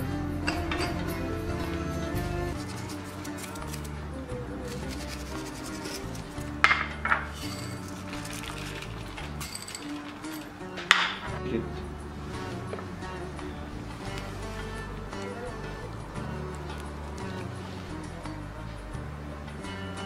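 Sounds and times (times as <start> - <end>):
background music: 0.0 - 20.0
glass bowls clinking: 4.7 - 11.4.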